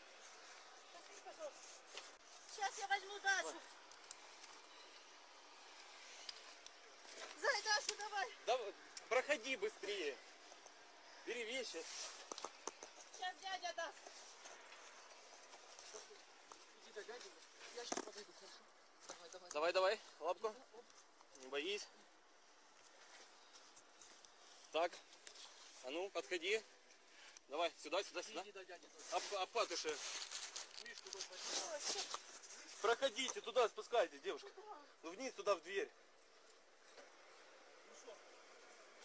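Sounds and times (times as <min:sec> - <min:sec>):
clothing rustling on microphone: 0:28.9 - 0:32.9.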